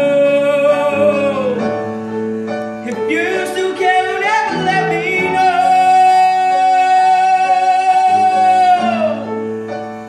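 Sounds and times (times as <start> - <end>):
man singing a long high note: 0.0 - 1.8, 2.9 - 9.5
sustained piano chords: 0.0 - 10.0.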